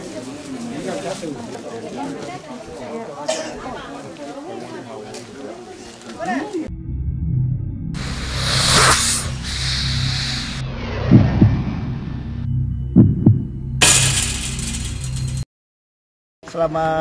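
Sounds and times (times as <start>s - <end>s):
deep hits: 6.7s - 15.4s
low pulsing bass drone: 6.7s - 15.4s
rushing whoosh: 8.0s - 13.4s.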